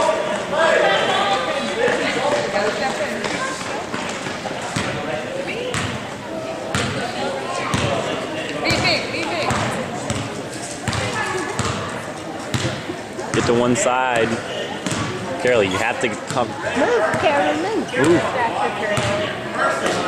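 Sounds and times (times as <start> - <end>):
voices chattering: 0.0 - 20.0
basketball bouncing on gym floor: 4.8 - 5.0, 5.7 - 6.0, 6.7 - 7.0, 7.7 - 7.9, 8.7 - 10.3, 10.9 - 11.9, 12.5 - 13.6, 14.2 - 15.2, 19.0 - 19.2.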